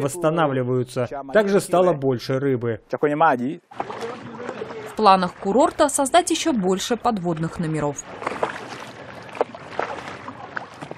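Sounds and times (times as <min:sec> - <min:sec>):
water splashing against boat hull: 0:03.7 - 0:10.9.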